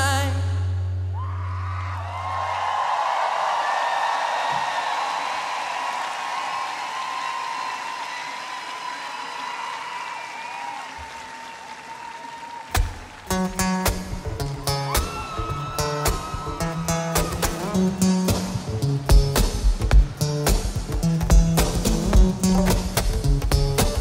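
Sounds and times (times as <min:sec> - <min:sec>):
crowd cheering and applauding: 0:01.2 - 0:19.9.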